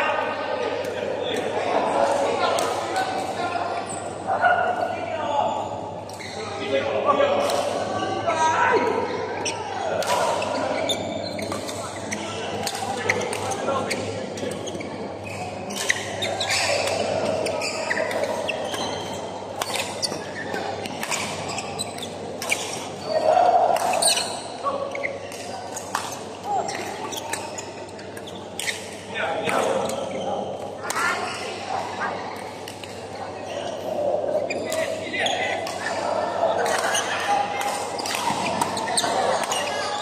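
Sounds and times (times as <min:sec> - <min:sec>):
rackets hitting shuttlecock: 0:09.9 - 0:10.6, 0:15.7 - 0:21.7, 0:36.6 - 0:39.8.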